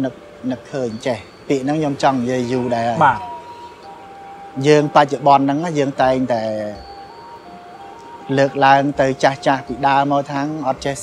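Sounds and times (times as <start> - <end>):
man speaking: 0.0 - 3.4
thin chime-like melody: 0.0 - 11.0.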